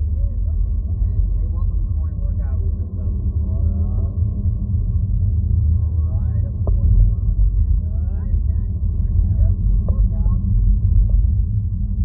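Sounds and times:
faint voices talking quietly: 0.0s - 4.3s, 5.7s - 12.0s
loud low rumble: 0.0s - 12.0s.

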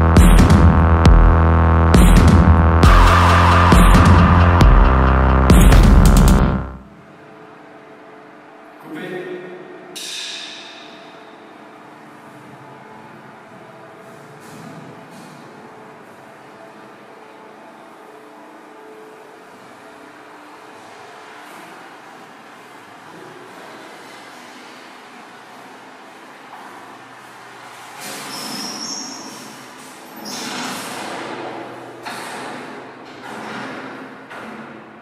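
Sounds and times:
electronic music with deep bass synth: 0.0s - 6.9s.

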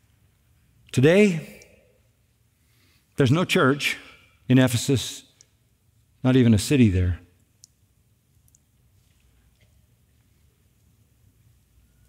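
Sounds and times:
man speaking: 0.9s - 1.8s, 3.2s - 5.4s, 6.2s - 7.3s.

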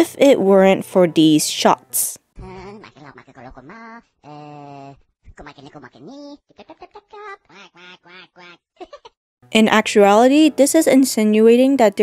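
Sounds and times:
young woman speaking: 0.0s - 2.2s, 9.5s - 12.0s
narration: 9.5s - 12.0s.

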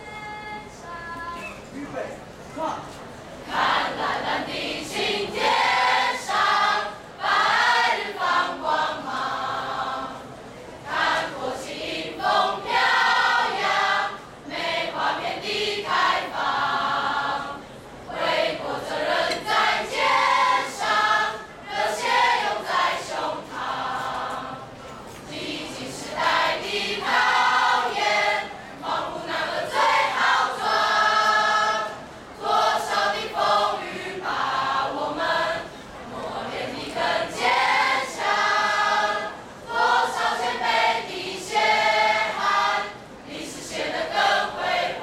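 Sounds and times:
students singing in chorus: 3.4s - 45.0s.

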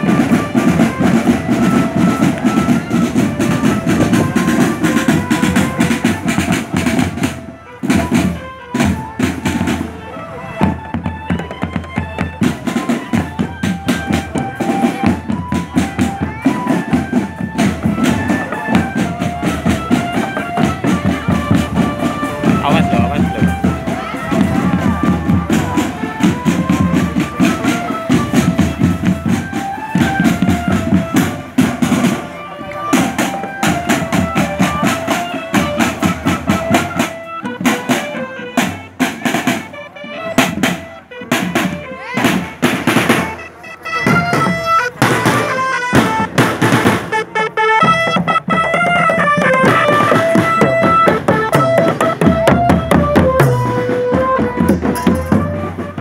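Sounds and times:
marching drum band playing: 0.0s - 56.0s.

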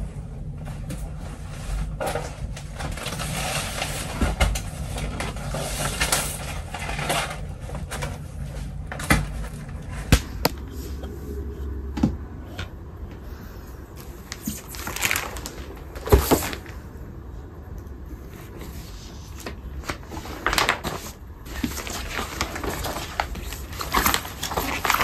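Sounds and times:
poster portfolio scraping and rustling: 0.6s - 11.5s, 14.0s - 16.9s, 18.2s - 25.0s.

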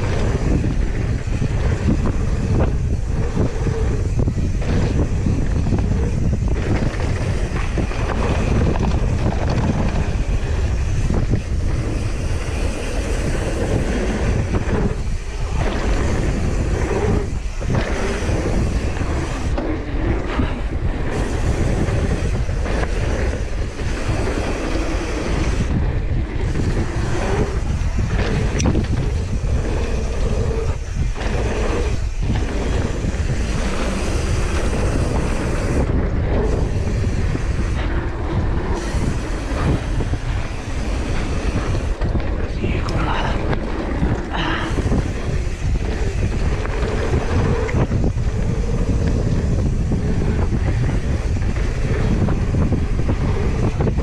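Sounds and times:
bike tyres rumbling and rattling: 0.0s - 54.0s
wind on microphone: 0.0s - 54.0s.

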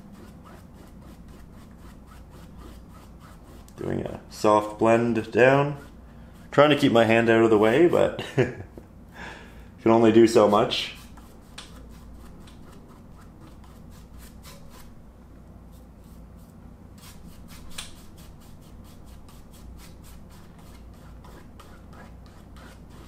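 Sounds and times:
paintbrush stroking canvas: 15.7s - 23.0s.

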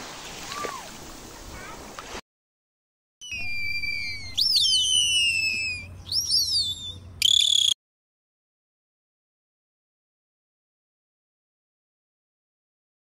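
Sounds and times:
dolphin squeal: 3.2s - 7.8s
dolphin whistles underwater: 3.2s - 7.8s.

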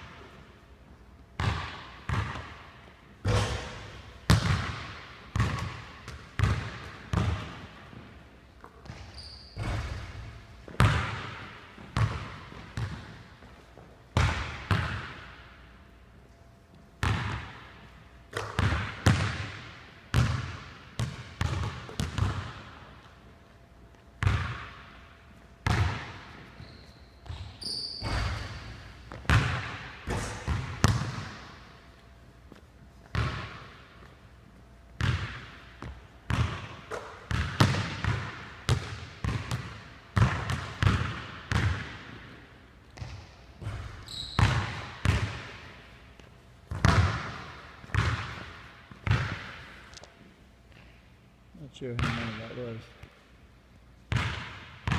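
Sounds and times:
basketball bouncing on hardwood floor: 1.4s - 2.5s, 3.3s - 7.6s, 8.8s - 13.2s, 18.4s - 22.6s, 27.2s - 31.5s, 35.0s - 42.1s, 43.0s - 45.4s, 46.7s - 49.5s
basketball hitting backboard and rim: 1.4s - 8.1s, 8.8s - 13.4s, 14.1s - 15.6s, 17.0s - 22.9s, 24.2s - 25.0s, 25.6s - 31.8s, 33.1s - 34.0s, 35.0s - 42.4s, 43.0s - 45.8s, 46.7s - 49.7s, 51.8s - 52.8s, 54.1s - 54.9s.

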